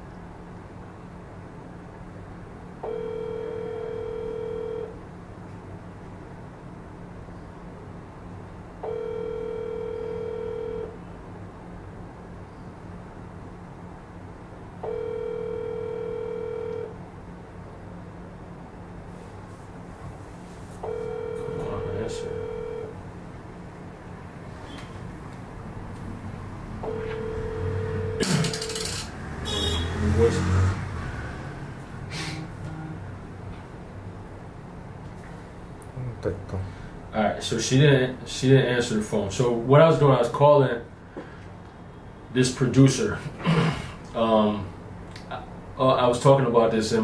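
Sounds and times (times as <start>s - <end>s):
low steady hum: 0.0s - 30.2s
telephone ringback tone: 2.8s - 5.0s, 8.8s - 11.0s, 14.8s - 17.0s, 20.8s - 23.0s, 26.8s - 29.8s.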